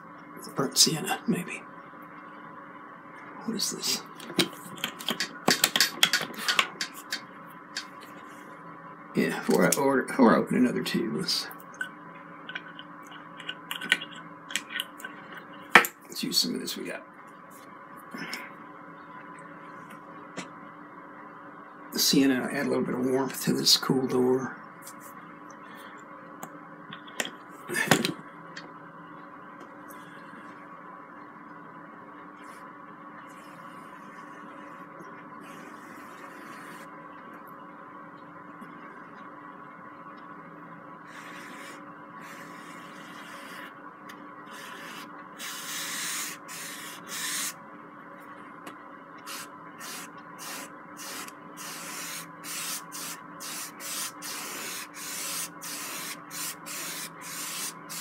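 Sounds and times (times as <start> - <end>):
faint room hum: 0.0 - 58.0.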